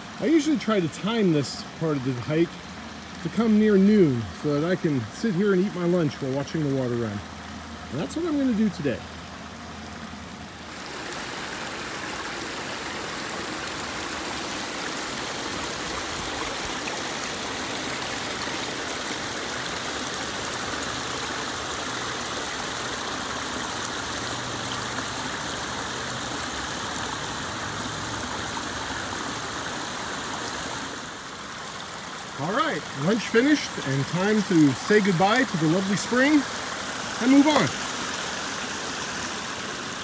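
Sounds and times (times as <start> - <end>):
water splashing over rocks: 0.0 - 40.0.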